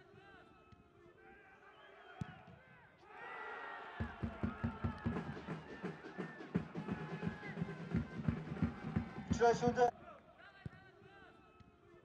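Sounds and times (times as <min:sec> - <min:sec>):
stadium crowd cheering: 0:01.2 - 0:11.5
drum beating steadily: 0:04.0 - 0:09.9.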